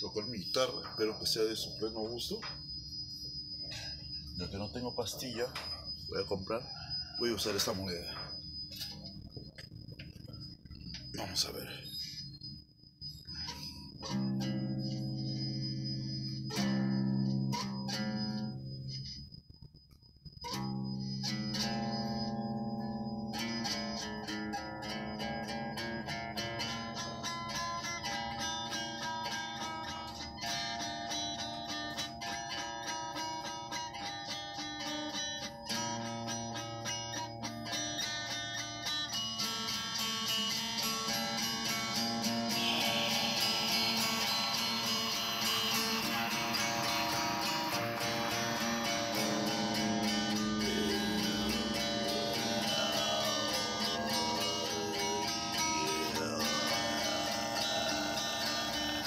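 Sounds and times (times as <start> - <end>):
electric guitar fast picking: 39.4 - 59.0.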